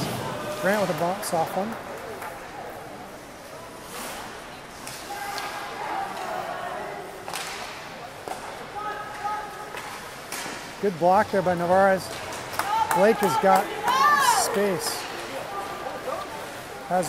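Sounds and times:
hockey sticks and puck cracking: 3.8 - 6.4, 7.1 - 17.0.

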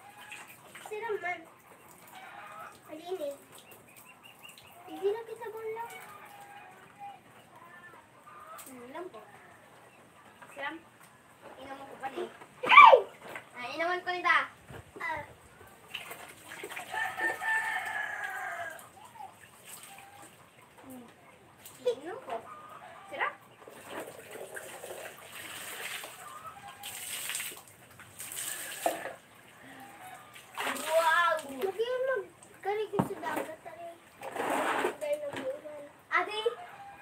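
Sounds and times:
rooster crowing: 6.0 - 7.1, 16.9 - 18.9, 36.5 - 37.0.

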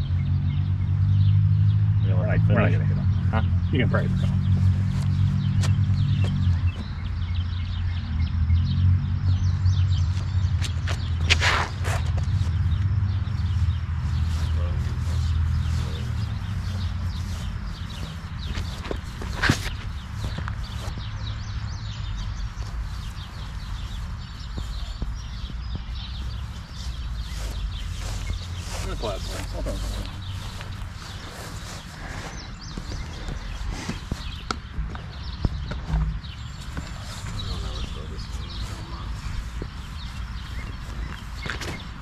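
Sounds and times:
wind noise on microphone: 3.3 - 42.0.

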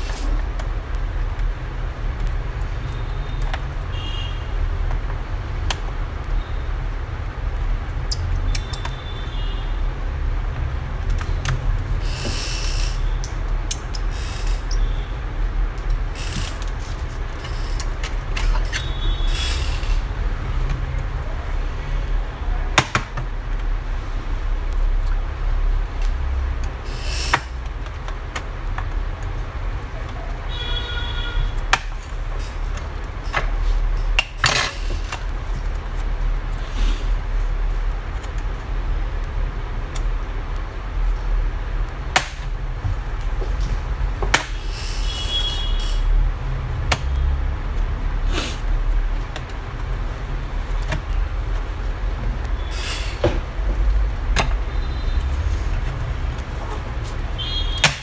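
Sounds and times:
short squeak: 12.0 - 13.2, 18.7 - 20.0.

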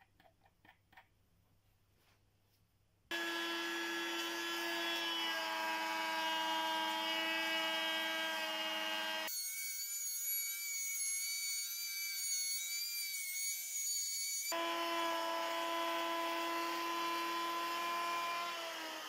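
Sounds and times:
electric router cutting wood: 3.1 - 19.0.

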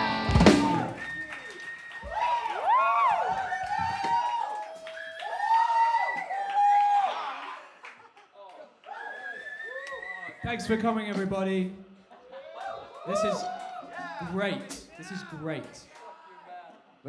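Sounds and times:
rock band final chord: 0.0 - 1.0
crowd whooping and cheering: 0.0 - 7.9, 8.8 - 10.4, 12.3 - 14.3
applause: 0.8 - 9.7.

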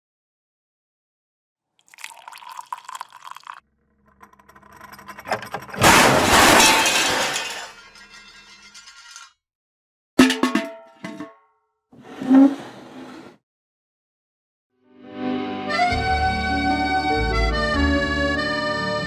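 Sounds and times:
something shattering in a crash: 4.5 - 9.3.

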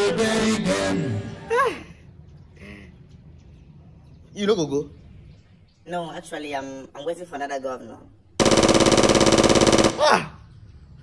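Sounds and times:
rapid machine-gun fire: 8.4 - 10.2.

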